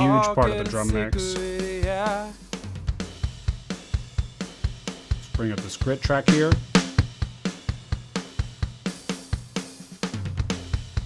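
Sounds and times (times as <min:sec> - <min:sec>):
distorted drum track: 0:00.0 - 0:11.0
rock drum kit playing: 0:00.0 - 0:11.0.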